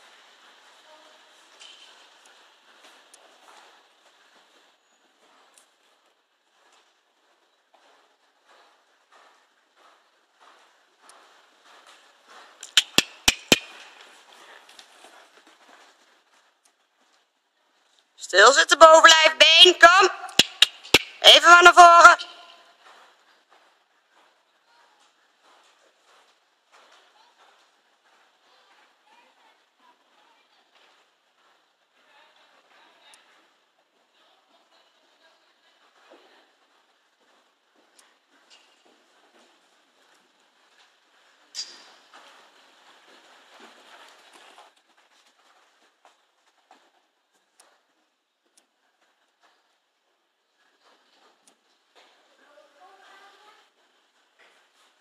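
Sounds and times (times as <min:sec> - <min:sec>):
horse hooves cantering in sand: 0:00.0 - 0:55.0
sharp clicks: 0:12.6 - 0:14.0, 0:20.2 - 0:21.3
person calling out: 0:18.2 - 0:22.5.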